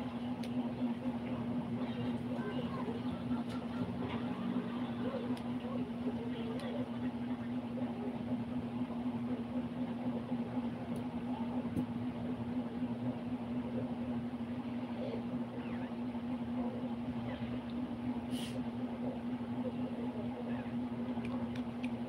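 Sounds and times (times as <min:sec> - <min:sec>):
steady low hum: 0:00.0 - 0:22.0
faint small clicks: 0:21.2 - 0:22.0.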